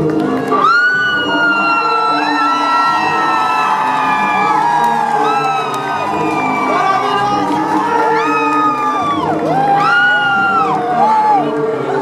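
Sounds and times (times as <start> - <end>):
crowd cheering and whooping: 0.2 - 12.0.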